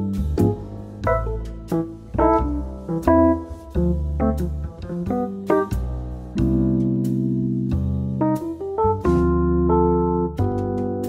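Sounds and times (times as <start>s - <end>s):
low bass notes: 0.0s - 11.0s
piano comping chords: 0.0s - 11.0s.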